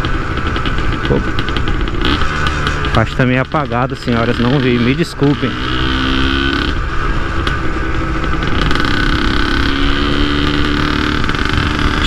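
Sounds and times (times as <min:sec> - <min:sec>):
two-stroke motorcycle engine running: 0:00.0 - 0:12.0.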